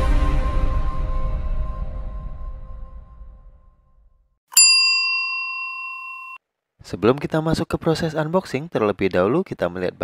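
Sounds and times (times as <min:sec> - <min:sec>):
bell ding ringing: 0:04.5 - 0:06.4.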